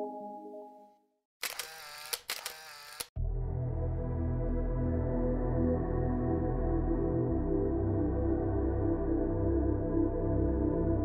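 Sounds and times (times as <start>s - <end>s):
soft ambient music: 0.0s - 1.0s, 3.2s - 11.0s.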